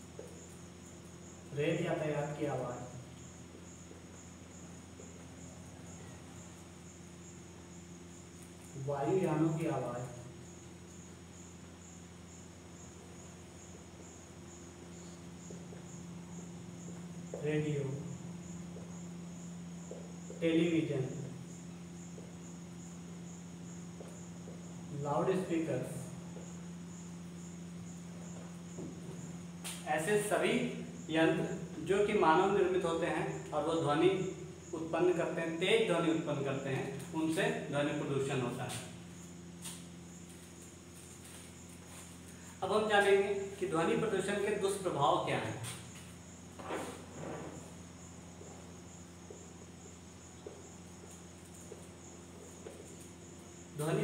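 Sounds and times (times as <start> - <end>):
crickets chirring: 0.0 - 54.0
steady low hum: 0.0 - 54.0.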